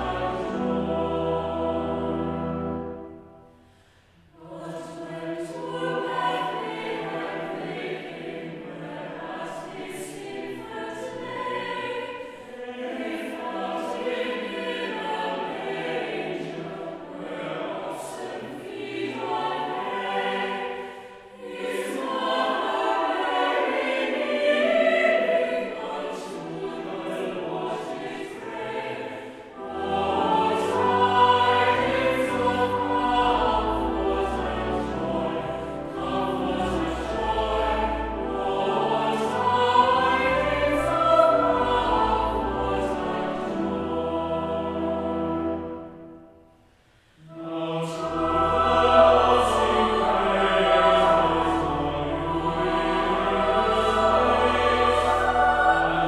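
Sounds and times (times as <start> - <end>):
organ chord: 0.0 - 3.6, 29.6 - 46.1, 47.3 - 56.0
choir singing a carol: 0.0 - 56.0
low organ bass notes: 48.0 - 56.0.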